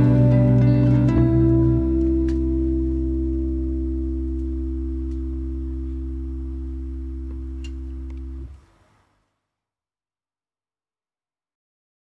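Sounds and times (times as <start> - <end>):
classical guitar chord ringing: 0.0 - 8.4.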